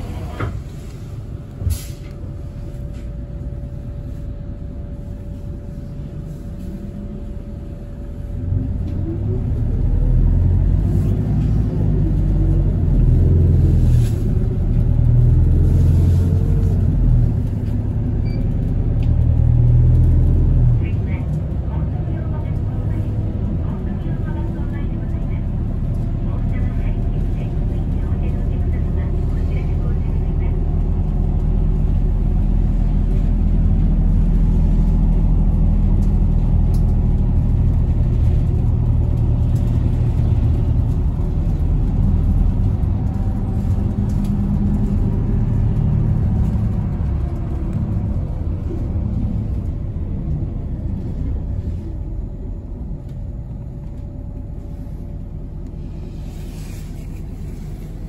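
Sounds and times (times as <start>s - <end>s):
bus engine rumble: 0.0s - 58.0s
road noise: 0.0s - 58.0s.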